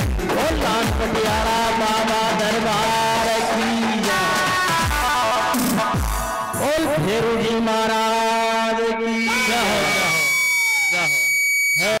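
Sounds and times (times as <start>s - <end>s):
man speaking through microphone: 0.0s - 4.5s, 6.5s - 10.2s, 10.9s - 12.0s
steady high-pitched tone: 8.8s - 12.0s
falling pitched sound: 9.0s - 12.0s.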